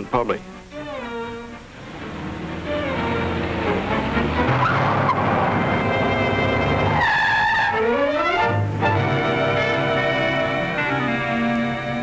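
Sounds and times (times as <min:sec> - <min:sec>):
orchestral film music: 0:00.0 - 0:12.0
car engine: 0:01.6 - 0:12.0.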